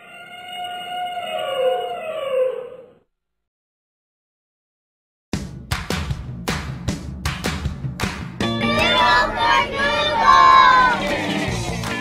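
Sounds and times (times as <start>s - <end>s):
low rumble: 8.6s - 11.2s.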